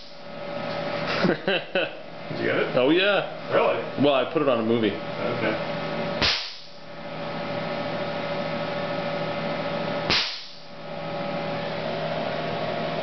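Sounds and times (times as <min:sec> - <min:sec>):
electrical hum: 0:00.0 - 0:13.0
sharp spark crack: 0:06.2 - 0:06.8, 0:10.1 - 0:10.6.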